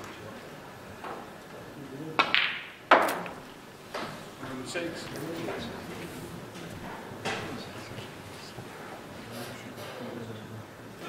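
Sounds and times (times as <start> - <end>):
snooker balls clicking: 2.2 - 4.2.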